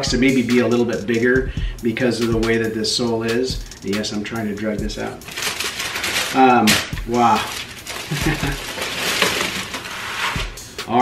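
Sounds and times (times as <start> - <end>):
tissue paper rustling: 5.0 - 10.6
person laughing: 8.0 - 8.8.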